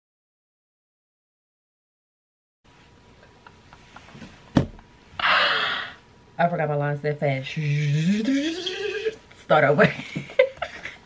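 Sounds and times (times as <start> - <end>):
woman sighing: 5.2 - 6.0.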